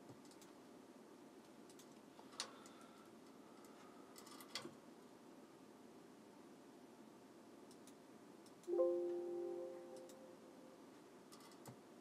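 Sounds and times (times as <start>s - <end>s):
faint clicks: 0.1s - 0.6s, 1.4s - 4.7s, 7.7s - 8.8s
electronic notification chime: 8.7s - 10.4s.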